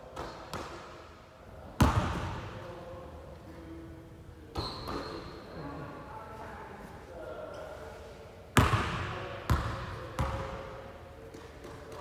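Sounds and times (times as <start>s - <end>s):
basketball bouncing on gym floor: 1.8s - 2.4s, 8.6s - 10.6s.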